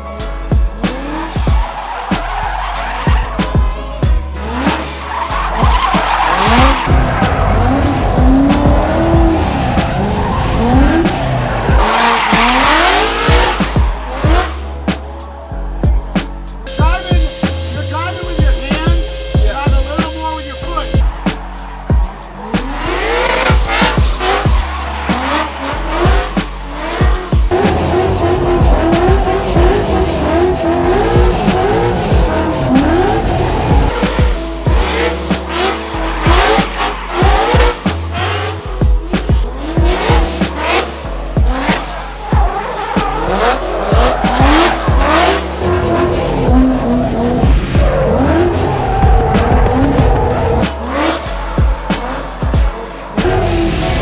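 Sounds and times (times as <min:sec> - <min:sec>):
car engine revving: 0:00.0 - 0:54.0
music with beat and bass: 0:00.0 - 0:54.0
tyres squealing: 0:00.9 - 0:14.6, 0:39.2 - 0:53.6.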